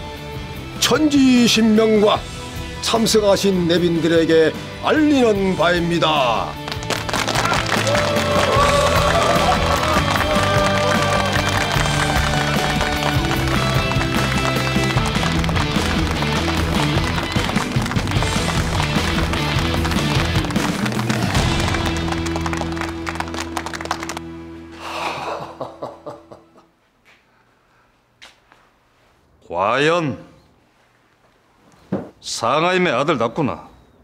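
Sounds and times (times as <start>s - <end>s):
crowd applauding: 6.6s - 24.5s.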